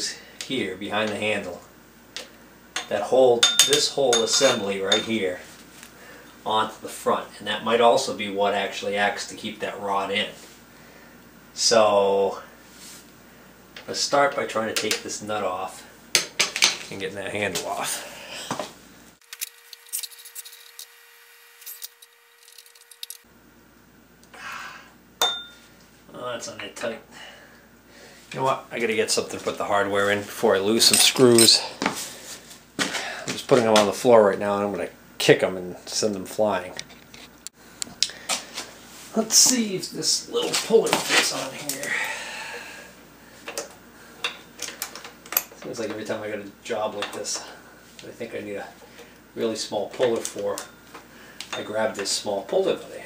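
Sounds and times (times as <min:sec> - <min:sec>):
sharp ringing metal clink: 0:02.8 - 0:05.1, 0:25.2 - 0:25.6.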